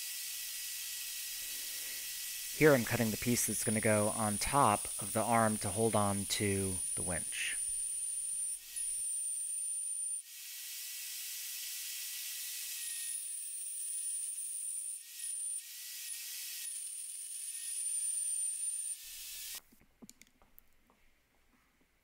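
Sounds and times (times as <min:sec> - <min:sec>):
band saw cutting steel: 0:00.0 - 0:19.6.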